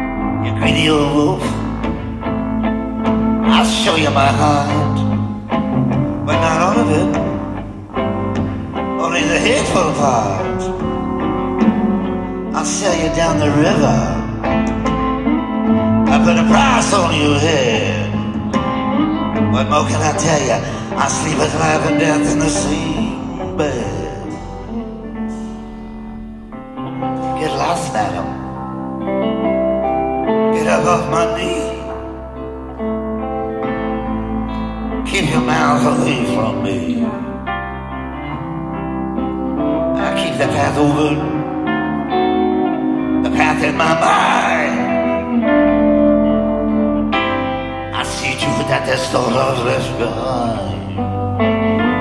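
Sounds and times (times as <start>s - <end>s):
guitar sustained notes: 0.0s - 52.0s
live band playing: 0.0s - 52.0s
piano sustained notes: 0.0s - 52.0s.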